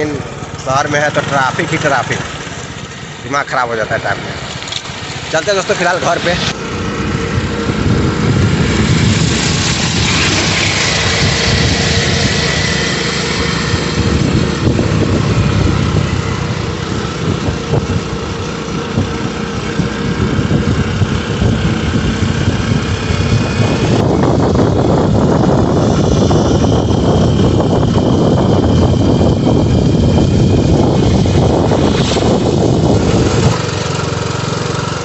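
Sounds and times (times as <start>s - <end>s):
road noise: 0.0s - 35.0s
vehicle engine running: 0.0s - 35.0s.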